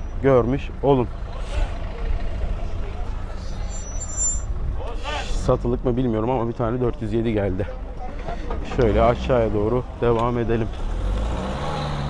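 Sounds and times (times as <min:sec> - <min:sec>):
car engine rumbling: 0:00.0 - 0:12.0
faint crowd voices: 0:01.4 - 0:10.6.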